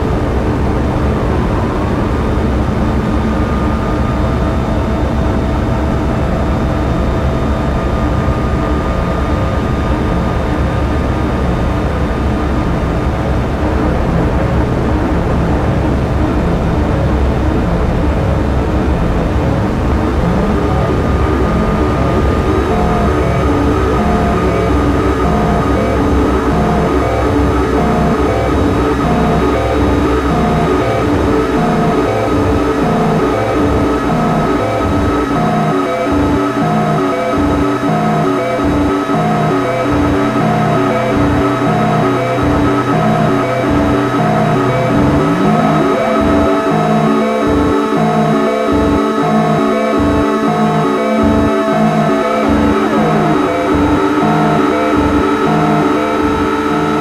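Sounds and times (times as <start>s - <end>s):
synthesizer drone: 0.0s - 57.0s
choppy repeating blips: 20.6s - 57.0s.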